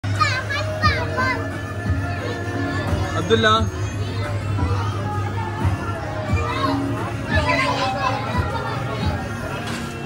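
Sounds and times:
background music: 0:00.0 - 0:10.0
young children calling out: 0:04.0 - 0:09.2.

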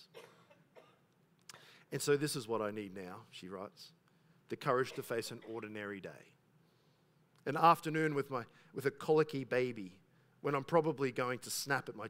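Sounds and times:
faint cough: 0:00.0 - 0:01.1, 0:04.7 - 0:05.8
man speaking: 0:01.9 - 0:06.4, 0:07.4 - 0:12.0.

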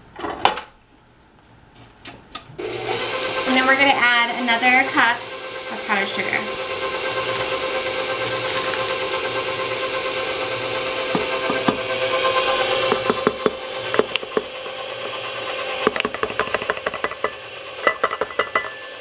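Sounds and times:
stand mixer motor hum: 0:02.6 - 0:19.0
beater clicking and knocking: 0:06.6 - 0:18.8.

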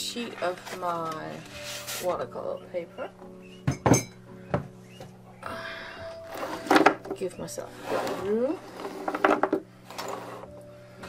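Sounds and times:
faint background music: 0:00.0 - 0:11.0
paper rustling: 0:00.2 - 0:02.3.

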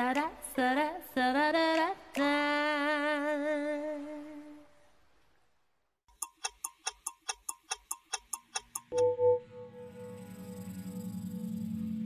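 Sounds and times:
quick clock-like ticking: 0:06.1 - 0:09.1.

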